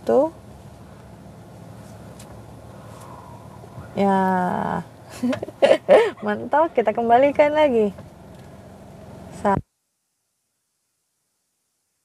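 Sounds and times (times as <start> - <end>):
car engine idling: 0.0 - 9.6.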